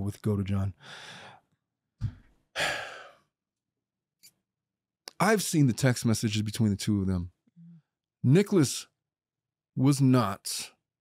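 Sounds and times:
man breathing into microphone: 0.8 - 1.4
man sighing: 2.6 - 3.2.

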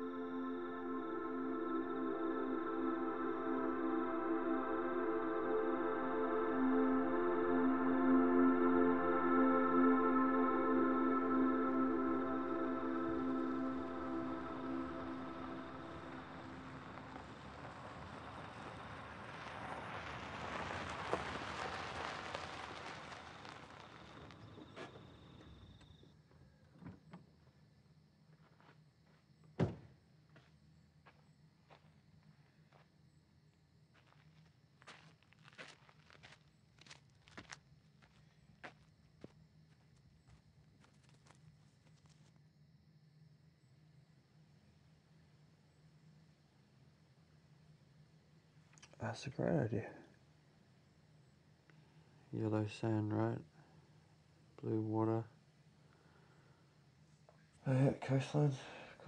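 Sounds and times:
car driving up and stopping: 10.8 - 26.0
car door thunk: 29.6 - 29.9
footsteps: 33.9 - 42.3.

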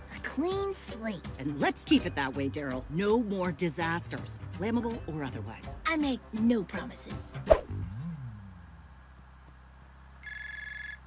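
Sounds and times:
low hum of car: 2.2 - 11.0
phone ringtone: 10.2 - 11.0.

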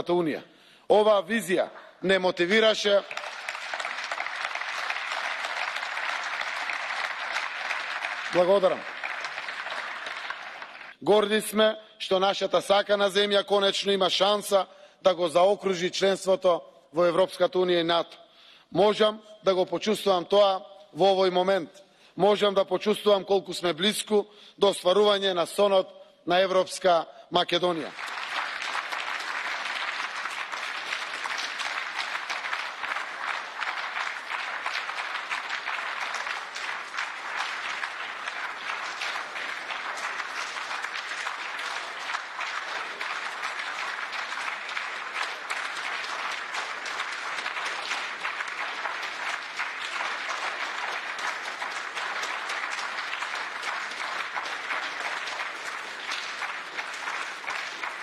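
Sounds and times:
audience applauding: 2.4 - 11.0, 27.6 - 58.0.

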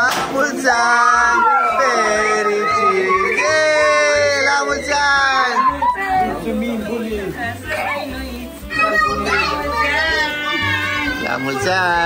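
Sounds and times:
group singing and cheering: 0.0 - 11.6.

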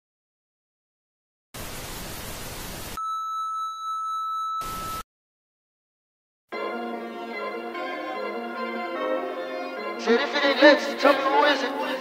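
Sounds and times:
television static hiss: 1.6 - 3.0.

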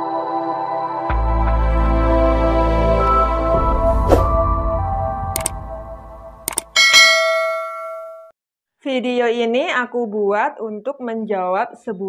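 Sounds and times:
soft intro music: 0.0 - 6.8
mouse clicks: 5.4 - 5.6, 6.5 - 6.7
notification bell chime: 6.8 - 8.3.

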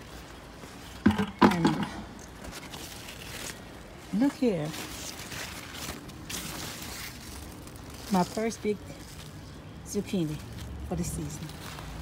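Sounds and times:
leaves rustling: 0.0 - 12.0
steady outdoor hiss: 0.0 - 12.0.

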